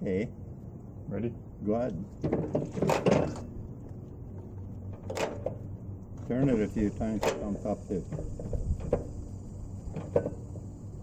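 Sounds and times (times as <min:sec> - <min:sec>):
tractor engine knocks: 0:02.2 - 0:03.5, 0:04.9 - 0:06.4, 0:07.2 - 0:09.2, 0:09.9 - 0:10.6.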